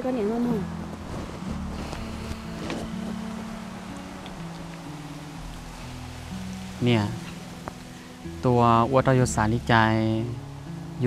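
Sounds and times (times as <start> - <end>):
soft low sustained music: 0.0 - 11.0.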